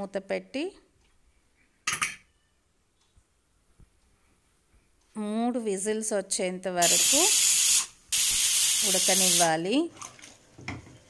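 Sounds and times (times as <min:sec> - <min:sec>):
pressure cooker whistling: 0:06.8 - 0:09.5.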